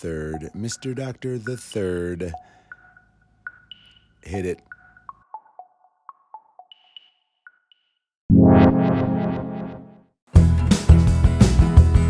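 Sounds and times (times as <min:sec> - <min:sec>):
short synthesizer pings: 0:08.3 - 0:10.0
sustained synth chord: 0:08.3 - 0:10.1.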